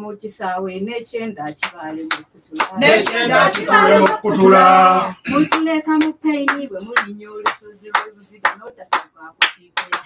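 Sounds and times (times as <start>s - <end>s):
hand claps: 1.5s - 4.6s, 5.4s - 10.0s
voices singing: 2.6s - 7.2s.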